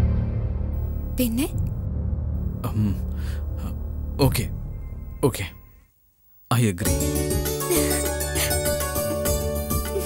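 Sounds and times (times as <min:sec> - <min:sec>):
brief breath: 0:03.2 - 0:03.5.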